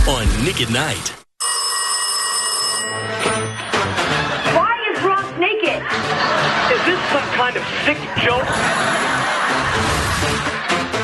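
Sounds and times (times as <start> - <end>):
telephone bell ringing: 1.4 - 4.0.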